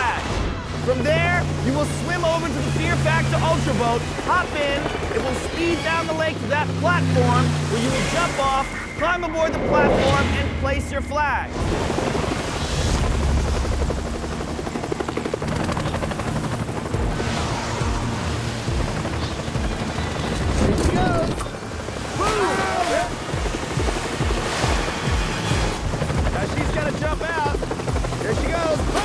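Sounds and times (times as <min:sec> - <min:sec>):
helicopter rotor blades chopping: 0:00.0 - 0:29.0
people shouting: 0:22.1 - 0:23.2, 0:28.6 - 0:29.0.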